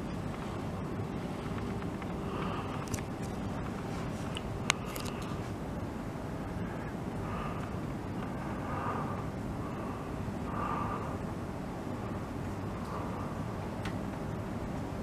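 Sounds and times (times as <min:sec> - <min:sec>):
low background rumble: 0:00.0 - 0:15.0.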